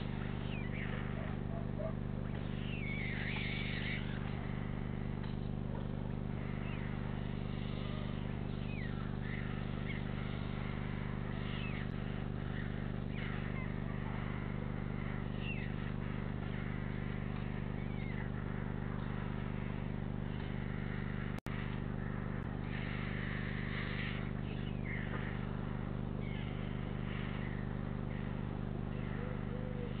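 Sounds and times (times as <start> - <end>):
electrical hum and buzz: 0.0 - 30.0.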